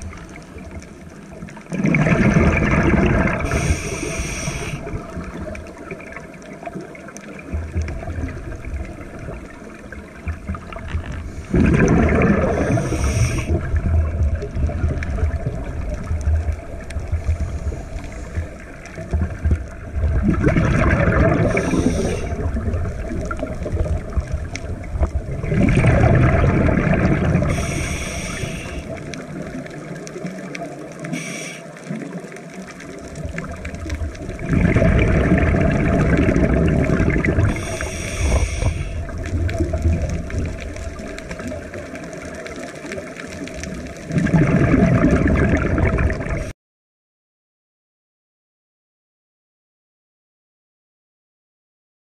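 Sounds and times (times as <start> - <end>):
muffled underwater rumble: 0.0 - 46.5
scuba regulator breathing: 3.2 - 5.2, 11.2 - 13.7, 17.2 - 18.8, 21.2 - 22.6, 27.4 - 29.0, 31.0 - 31.9, 37.0 - 39.2.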